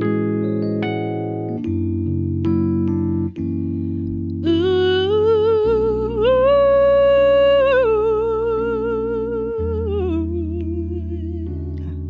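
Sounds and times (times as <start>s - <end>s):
electric keyboard chords: 0.0s - 12.0s
woman humming wordlessly: 4.4s - 11.6s.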